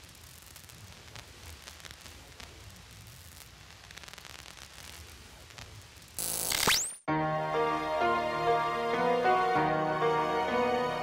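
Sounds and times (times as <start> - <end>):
tv static hiss: 0.0 - 7.0.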